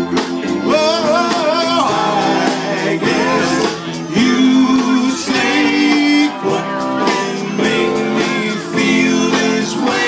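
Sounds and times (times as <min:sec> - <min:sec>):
guitar accompaniment: 0:00.0 - 0:10.0.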